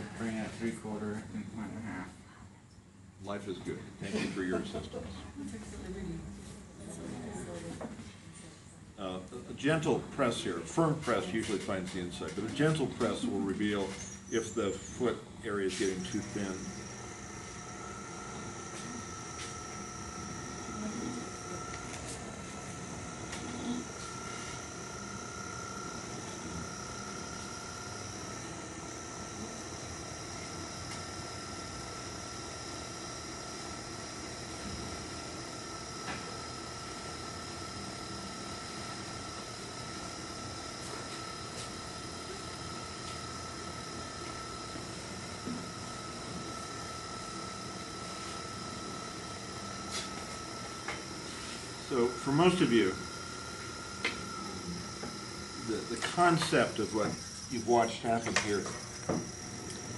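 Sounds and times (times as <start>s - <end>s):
potter's wheel whine: 8.9s - 59.9s.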